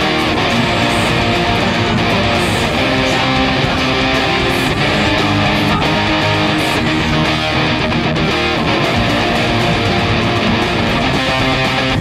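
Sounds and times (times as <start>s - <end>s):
drums: 0.0s - 12.0s
electric guitars playing rock: 0.0s - 12.0s.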